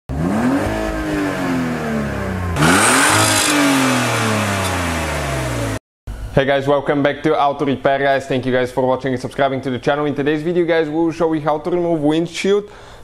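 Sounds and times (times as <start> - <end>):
car engine revving: 0.1 - 5.8.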